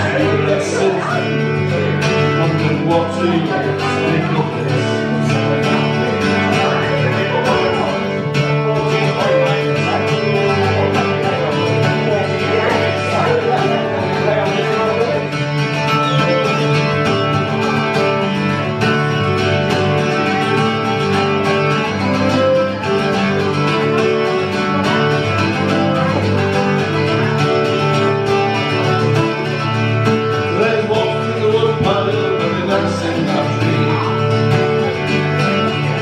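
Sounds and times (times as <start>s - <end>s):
mandolin strumming and picking: 0.0s - 36.0s.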